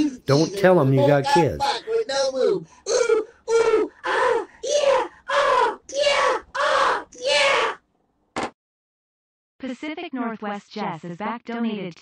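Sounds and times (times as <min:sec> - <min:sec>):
person crying out: 0:00.0 - 0:07.6.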